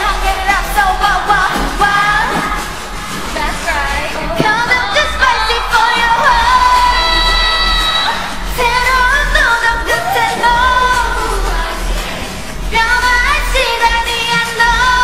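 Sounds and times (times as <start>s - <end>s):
women singing: 0.0s - 15.0s.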